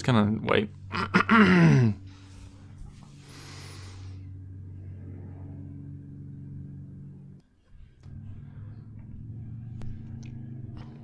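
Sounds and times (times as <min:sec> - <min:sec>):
motorbike engine running: 0:00.7 - 0:11.0.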